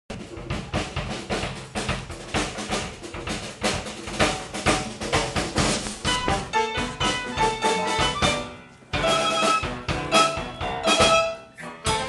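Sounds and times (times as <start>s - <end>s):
drums and percussion: 0.1s - 12.0s
pitched instruments: 5.8s - 12.0s.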